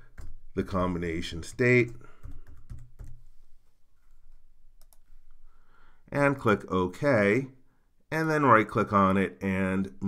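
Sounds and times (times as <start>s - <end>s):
typing on computer keyboard: 0.0s - 0.5s, 1.8s - 3.2s, 4.8s - 5.0s.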